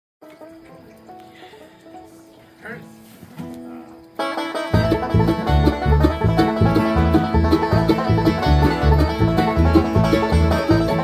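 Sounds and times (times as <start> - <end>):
acoustic string instruments: 0.2 - 11.0.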